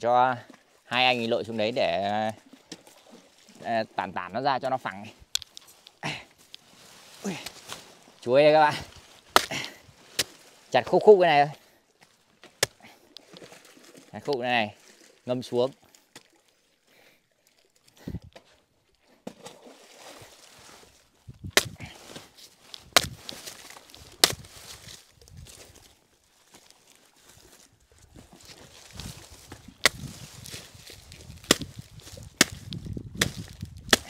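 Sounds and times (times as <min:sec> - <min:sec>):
machete chopping plant trunk: 0:09.3 - 0:10.4, 0:12.4 - 0:12.8, 0:21.5 - 0:22.0, 0:22.9 - 0:24.8, 0:29.8 - 0:34.0.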